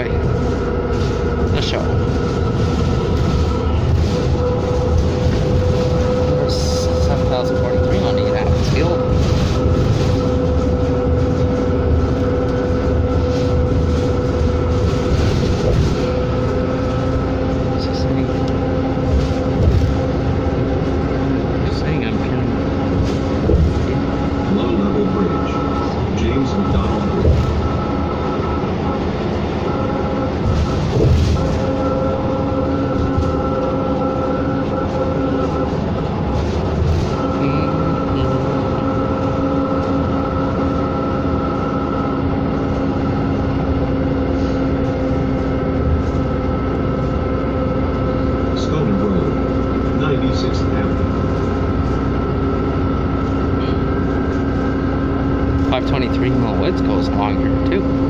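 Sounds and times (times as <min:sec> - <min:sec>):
bus engine drone with whine: 0:00.0 - 0:58.0
road rumble: 0:00.0 - 0:58.0.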